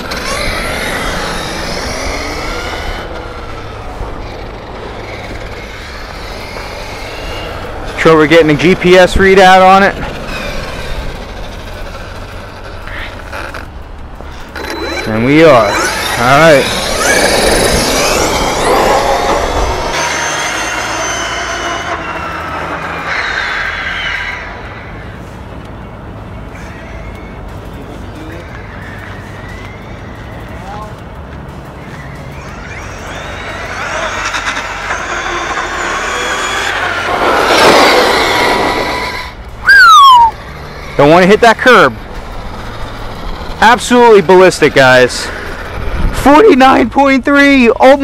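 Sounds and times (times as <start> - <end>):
toy truck electric motor whining: 0.0 - 24.6, 32.0 - 46.8.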